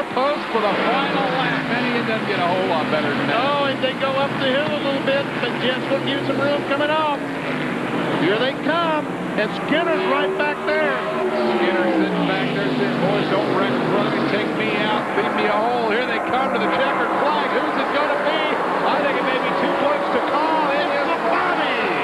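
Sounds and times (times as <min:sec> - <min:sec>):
race trucks passing at full throttle: 0:00.0 - 0:22.0.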